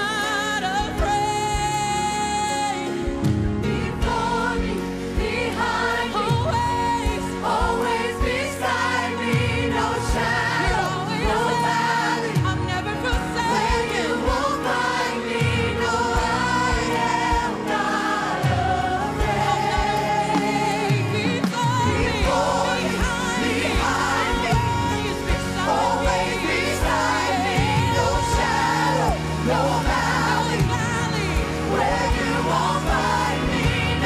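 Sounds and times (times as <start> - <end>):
live band accompaniment: 0.0 - 34.0
singers singing worship song: 0.0 - 34.0.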